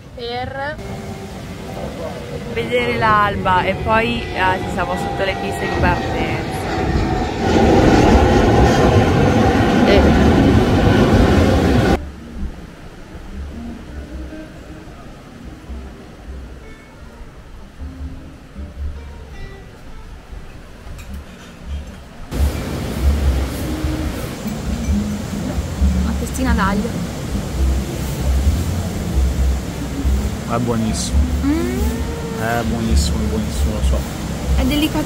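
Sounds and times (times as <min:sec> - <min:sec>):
low rumble: 0:00.0 - 0:16.6, 0:22.3 - 0:35.0
jet airliner flying overhead: 0:00.8 - 0:12.0.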